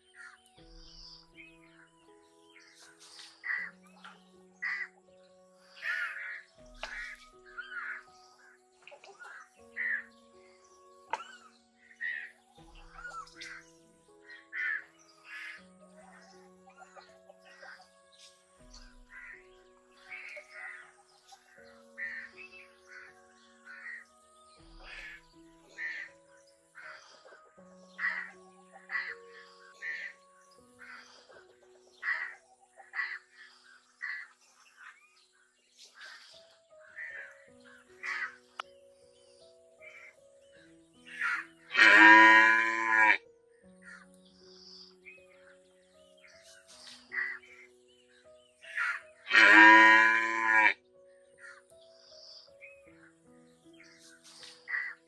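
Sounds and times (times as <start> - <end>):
background music: 0.0 - 55.0
calf mooing: 41.8 - 43.2, 49.3 - 50.8.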